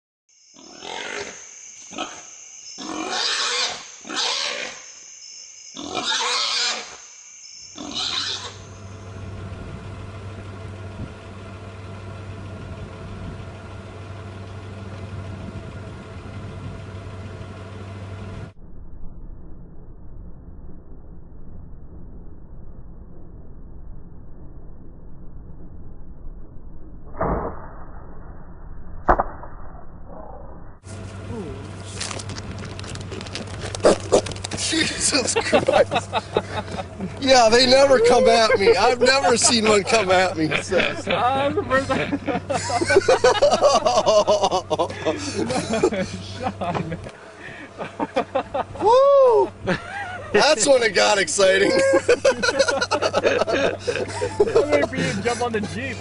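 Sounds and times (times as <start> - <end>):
wild hog grunting and squealing: 0.6 - 2.2, 2.8 - 4.8, 5.8 - 7.0, 7.8 - 8.7, 33.0 - 35.2
faint high whine: 1.2 - 10.4, 18.3 - 32.3
sharp crack of arrow: 27.0 - 28.2, 29.0 - 30.0.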